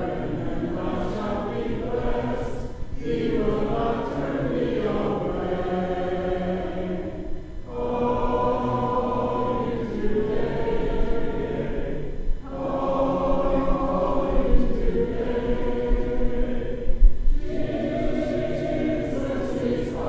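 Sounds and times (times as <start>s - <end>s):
congregation singing a hymn: 0.0s - 20.0s.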